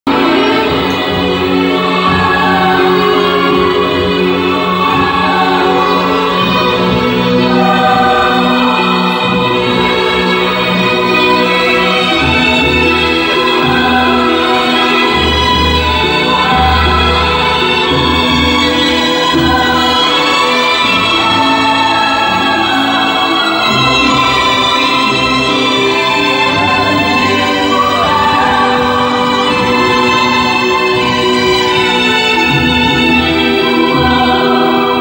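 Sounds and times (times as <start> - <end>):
voices singing: 0.1 - 35.0.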